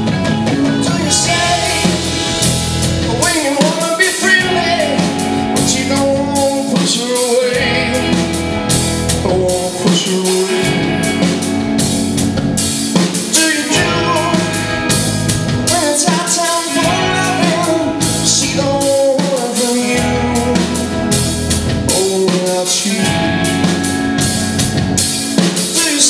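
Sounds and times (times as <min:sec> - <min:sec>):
bass guitar: 0:00.0 - 0:26.0
drum kit: 0:00.0 - 0:26.0
electric guitars: 0:00.0 - 0:26.0
male singer: 0:00.5 - 0:08.5, 0:09.1 - 0:11.5, 0:13.1 - 0:15.0, 0:15.7 - 0:23.9, 0:25.4 - 0:26.0.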